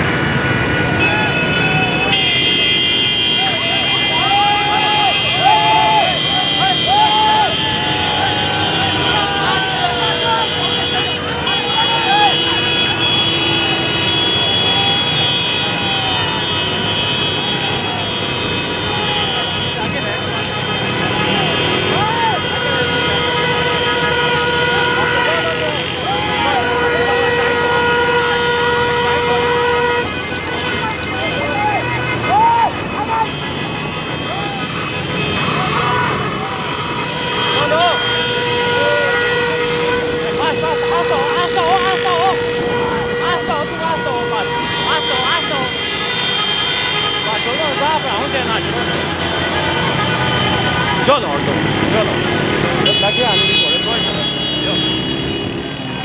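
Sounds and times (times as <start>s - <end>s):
vehicle horns blasting: 0.0s - 56.0s
voices: 0.7s - 56.0s
motorcycle and jeep engines running: 3.4s - 56.0s.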